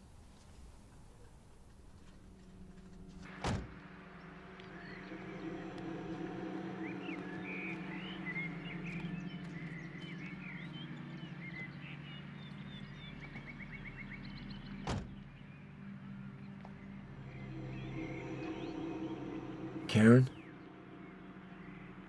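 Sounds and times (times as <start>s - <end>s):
birds chirping: 0.0s - 22.0s
steady low hum: 1.5s - 22.0s.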